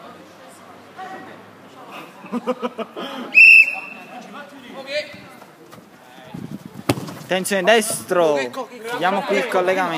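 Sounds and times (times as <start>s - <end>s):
football kick thud: 6.8s - 7.3s.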